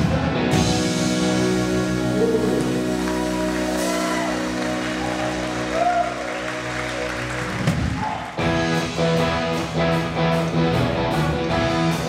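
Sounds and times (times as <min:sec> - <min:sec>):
bass guitar: 0:00.0 - 0:12.0
electric guitar strumming chords: 0:00.0 - 0:12.0
sustained rock chord: 0:00.0 - 0:12.0.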